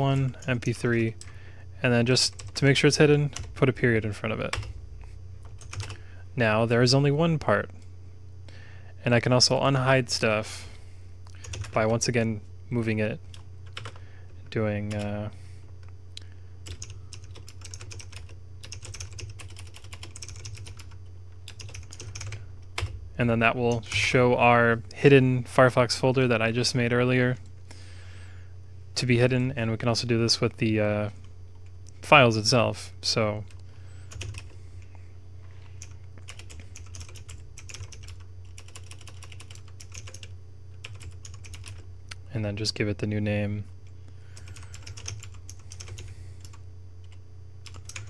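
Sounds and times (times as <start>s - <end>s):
steady low hum: 0.0s - 48.0s
computer keyboard typing: 2.3s - 3.5s, 4.4s - 4.7s, 5.4s - 6.0s, 11.3s - 12.0s, 13.3s - 14.0s, 16.6s - 23.0s, 33.5s - 34.6s, 35.8s - 41.8s, 44.4s - 48.0s.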